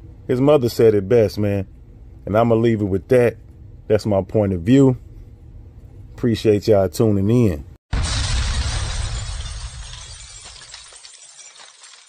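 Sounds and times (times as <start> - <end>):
crackling shattering tail: 7.9 - 12.0
crash with deep rumble: 7.9 - 12.0.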